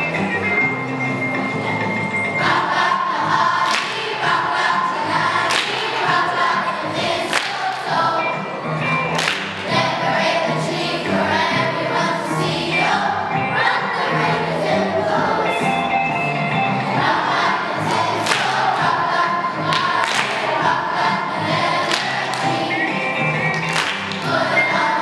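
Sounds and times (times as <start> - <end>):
children's choir singing: 0.0 - 25.0
instrumental accompaniment: 0.0 - 25.0.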